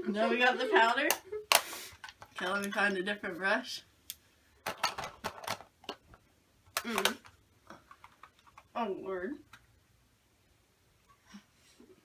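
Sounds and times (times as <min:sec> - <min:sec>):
makeup brushes and cases clattering: 0:04.6 - 0:06.0.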